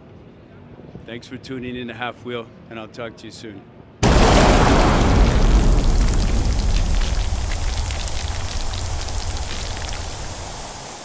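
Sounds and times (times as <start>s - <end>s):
deep rumble: 4.0s - 10.9s
crackling hissing rush: 4.0s - 11.0s.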